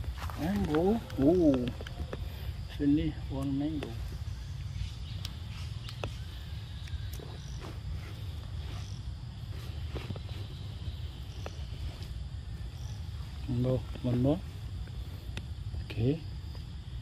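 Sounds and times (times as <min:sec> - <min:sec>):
constant low rumble: 0:00.0 - 0:17.0
high insect chorus: 0:00.0 - 0:17.0
sharp faint clicks: 0:05.1 - 0:06.2.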